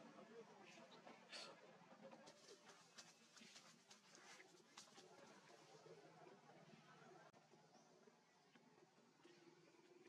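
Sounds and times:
rustles: 2.4 - 5.4.

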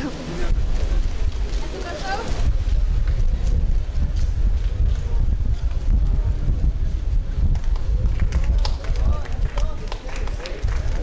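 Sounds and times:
faint indistinct voices: 0.0 - 11.0
steady low rumble: 0.0 - 11.0.

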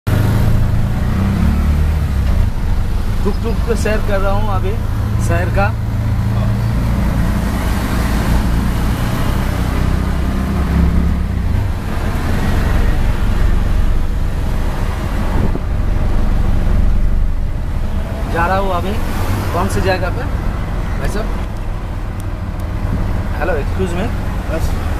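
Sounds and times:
auto-rickshaw engine running: 0.1 - 24.9
road and wind noise: 0.1 - 24.9.

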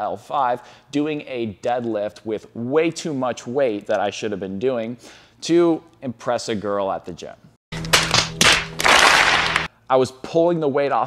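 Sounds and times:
sharp cracks: 7.8 - 9.7.

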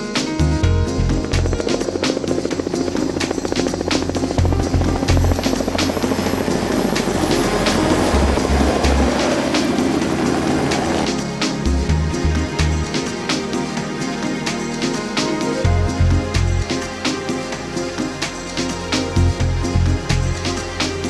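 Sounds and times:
background music with beat: 0.0 - 21.0
model helicopter buzzing: 1.1 - 11.2.

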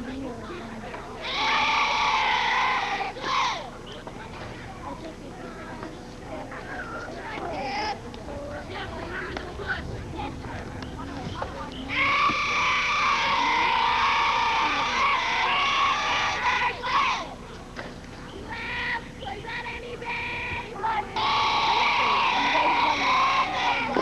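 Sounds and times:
distant children shouting: 1.2 - 3.9, 11.7 - 17.4, 18.3 - 24.0
children chanting: 20.9 - 24.0.

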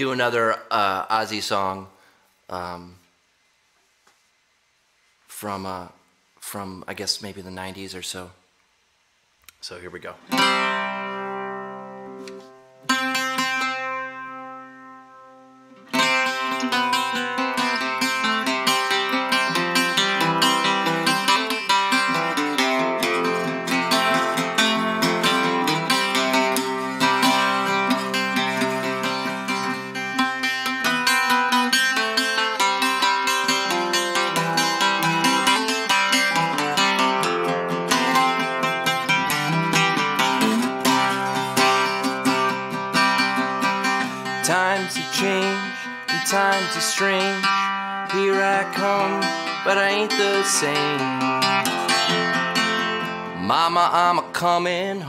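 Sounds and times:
mandolin picked and strummed: 10.1 - 55.0.

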